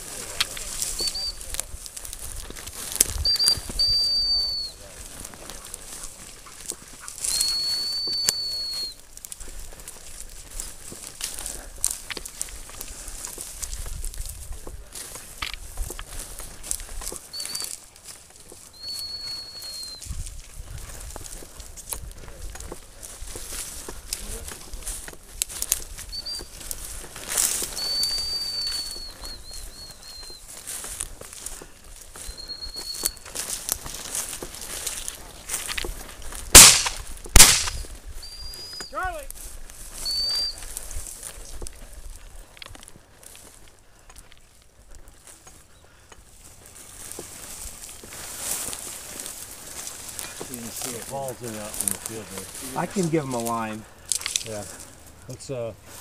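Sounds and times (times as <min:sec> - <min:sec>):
footsteps through dry brush: 0:00.0 - 0:56.0
high-pitched dog whistle: 0:03.2 - 0:04.8, 0:07.3 - 0:09.0, 0:17.3 - 0:17.7, 0:18.8 - 0:20.1, 0:27.8 - 0:30.4, 0:32.3 - 0:33.2, 0:38.2 - 0:39.0, 0:40.0 - 0:40.6.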